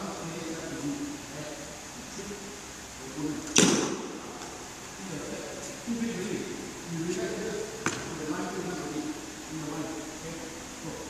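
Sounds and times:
racket striking shuttlecock: 3.5s - 4.2s.

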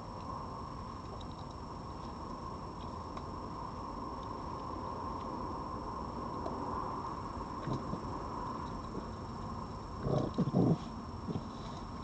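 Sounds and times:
fox growling: 7.6s - 8.1s, 10.0s - 11.8s.

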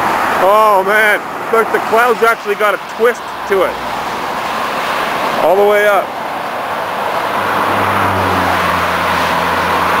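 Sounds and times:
car road and wind noise: 0.0s - 10.0s
low engine hum: 6.0s - 10.0s.

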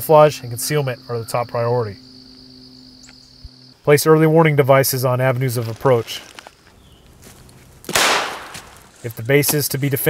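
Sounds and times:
insect chorus: 0.0s - 10.0s.

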